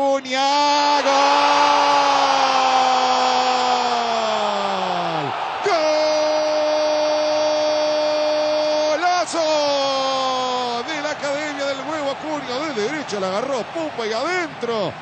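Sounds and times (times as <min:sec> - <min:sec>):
commentator's drawn-out goal cry: 0:00.0 - 0:15.0.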